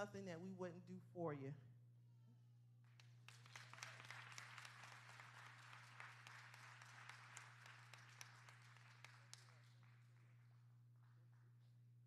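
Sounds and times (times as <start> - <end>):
congregation applauding: 2.9 - 11.6.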